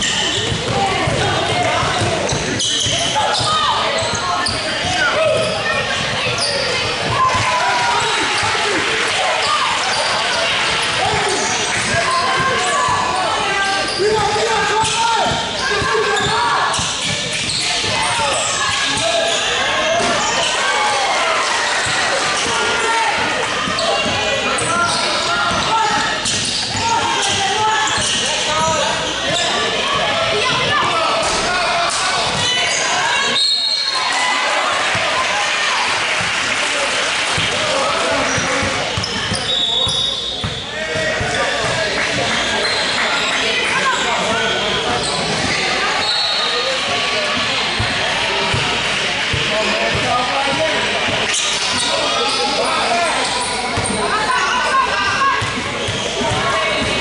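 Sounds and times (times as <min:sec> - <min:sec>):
people shouting and talking: 0:00.0 - 0:57.0.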